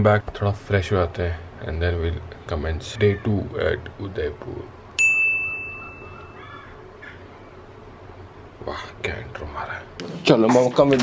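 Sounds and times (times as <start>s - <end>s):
bright ding: 5.0s - 6.4s.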